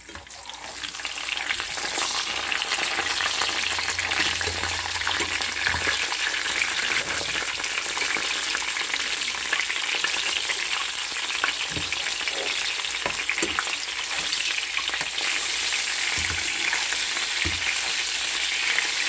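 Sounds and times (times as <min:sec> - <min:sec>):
oil sizzling and crackling: 0:00.0 - 0:19.0.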